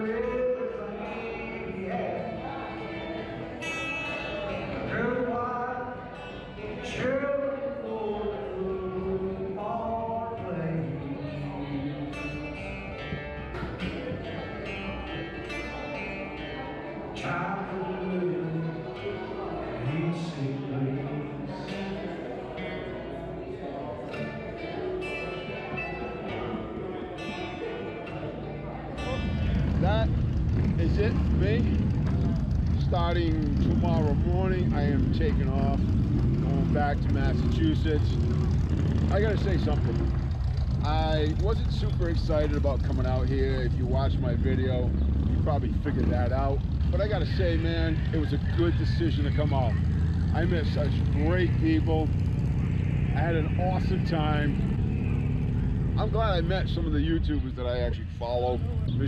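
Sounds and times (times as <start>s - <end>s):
acoustic guitar: 0.0s - 41.3s.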